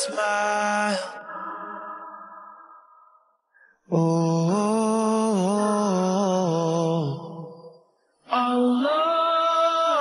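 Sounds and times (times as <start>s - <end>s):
person singing: 3.9s - 7.6s.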